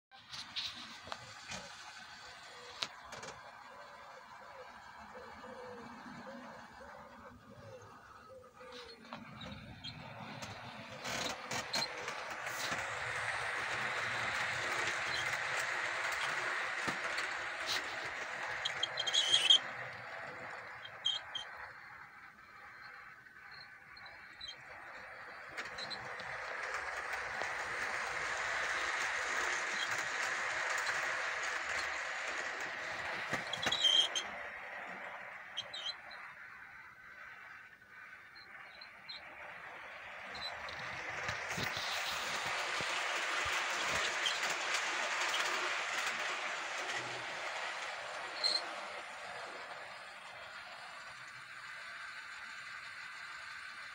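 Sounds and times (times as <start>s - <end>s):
model train rolling rumble: 0.2s - 53.9s.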